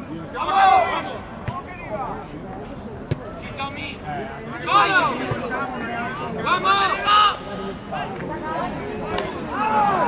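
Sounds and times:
players shouting: 0.3 - 2.2, 8.7 - 10.0.

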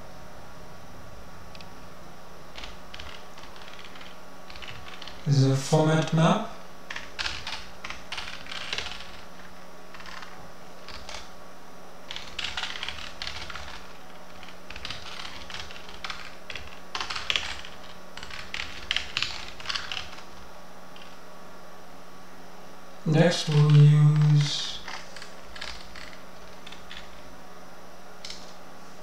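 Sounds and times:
steady low hum: 0.0 - 29.0
keyboard typing clicks: 2.5 - 5.2, 9.9 - 10.3.

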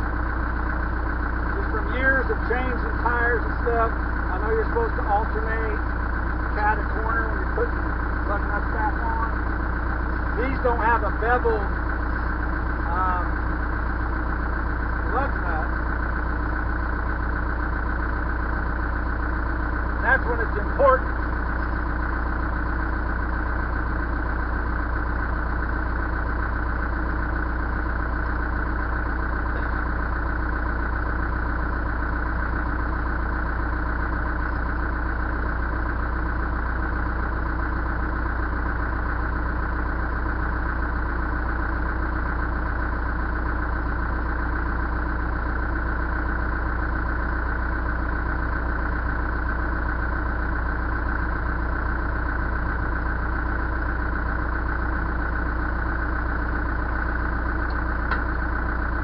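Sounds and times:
backhoe engine idling: 0.0 - 59.0.

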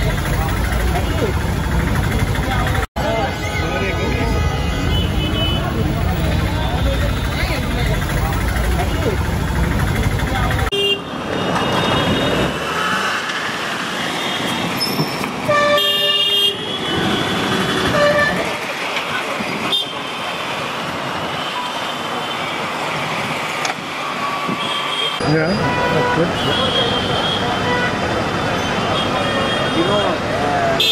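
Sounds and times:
city street traffic: 0.0 - 30.9
vehicle horns honking: 3.0 - 7.5, 10.7 - 12.6, 14.2 - 18.6, 24.4 - 28.0, 28.6 - 30.9
low engine rumble: 5.7 - 10.7.

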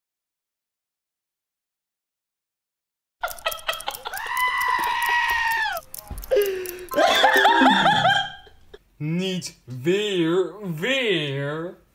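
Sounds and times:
sharp clicks: 3.2 - 8.7
high-pitched wavering cry: 3.9 - 6.4.

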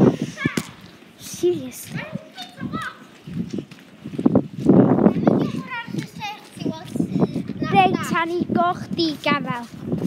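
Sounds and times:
children talking: 0.0 - 10.0.

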